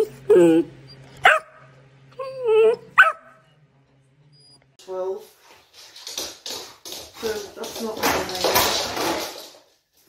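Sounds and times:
puppy barking: 1.2 - 1.7, 2.7 - 3.4.

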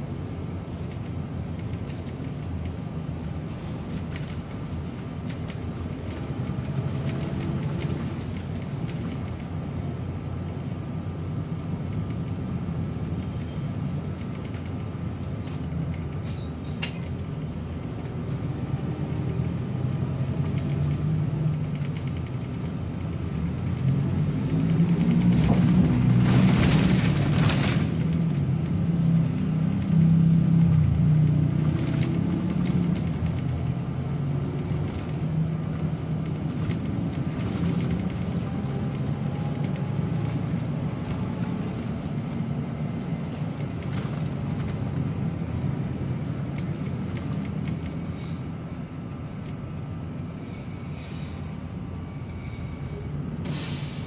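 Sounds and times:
bus engine drone: 0.0 - 54.0
air brake hiss: 50.4 - 51.5, 52.3 - 54.0.

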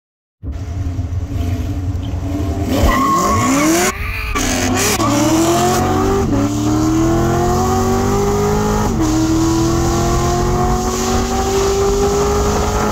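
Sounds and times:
cars accelerating hard: 1.2 - 12.9.

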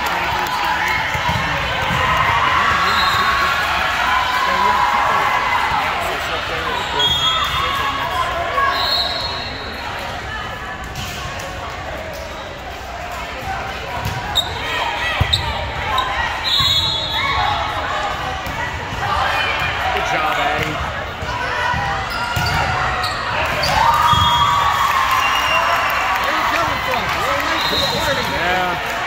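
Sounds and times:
spectators' voices: 0.0 - 29.0
volleyball hits: 18.2 - 24.6
players calling: 19.0 - 29.0.

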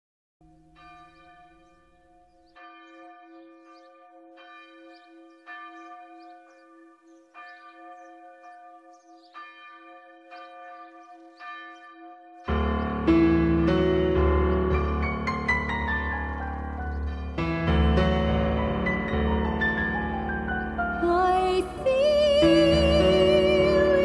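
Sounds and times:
church bell tolling: 0.4 - 24.0.

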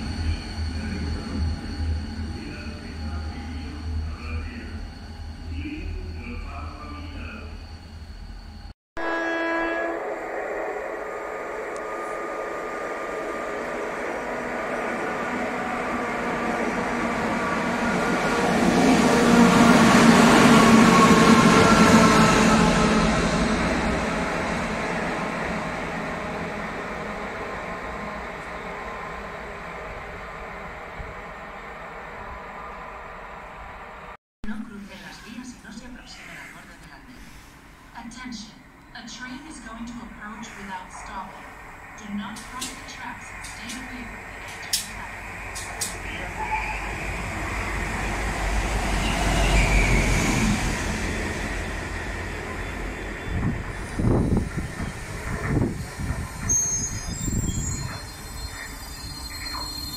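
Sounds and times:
distant locomotive rumble: 0.0 - 59.9
locomotive horn blast: 9.0 - 10.8
locomotives passing at speed: 10.0 - 34.2, 39.6 - 56.5.

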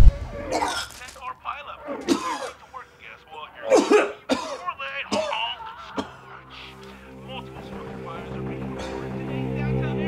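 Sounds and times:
man coughing: 0.5 - 1.0, 2.0 - 2.6, 3.6 - 6.4, 8.8 - 9.1.

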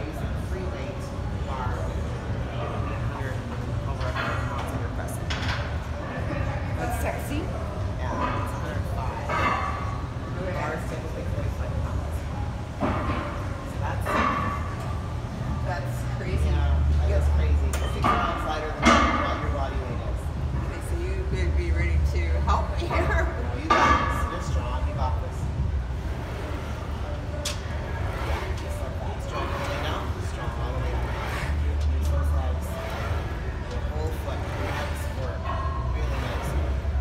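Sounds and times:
low hum of gym room: 0.0 - 37.0
steady low rumble: 18.3 - 37.0.

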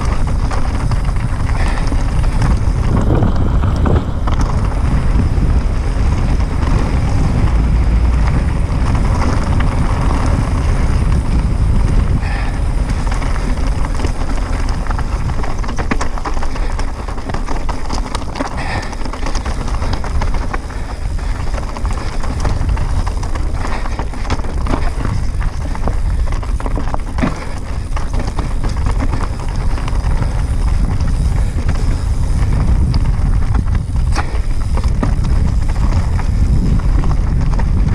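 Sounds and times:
bike rattling: 0.0 - 37.9
tyres crunching over stones: 0.0 - 37.9
wind buffeting microphone: 0.0 - 37.9.

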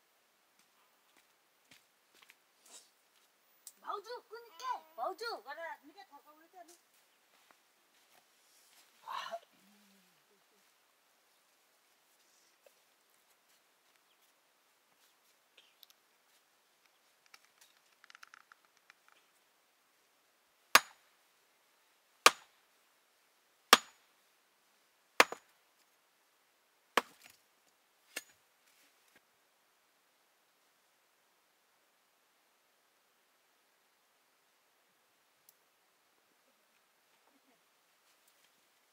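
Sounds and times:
axe chopping: 20.8 - 21.0, 22.2 - 22.5, 23.7 - 24.0, 25.2 - 25.5, 27.0 - 27.3.

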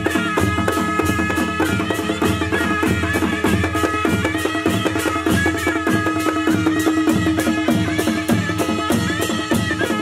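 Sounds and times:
cymbals beating: 0.0 - 10.0
reed pipe melody: 0.0 - 10.0.

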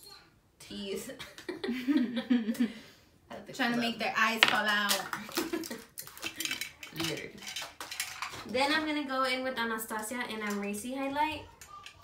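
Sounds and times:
brushes and containers clattering: 5.3 - 8.5.

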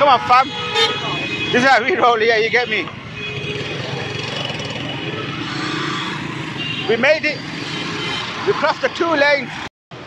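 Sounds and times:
dense street traffic: 0.0 - 10.0
motorcycle engines running: 1.1 - 8.7.

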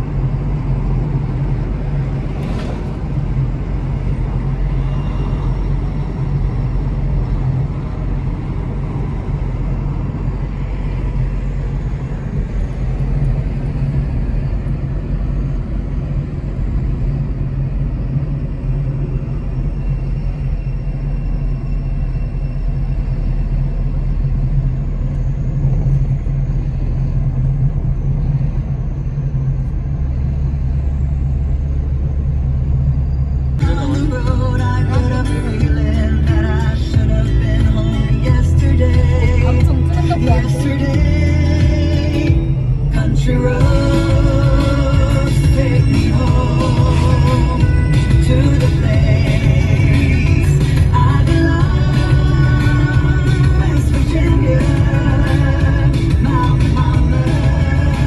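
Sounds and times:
car engine rumble: 0.0 - 58.0
tyre road noise: 0.0 - 58.0.

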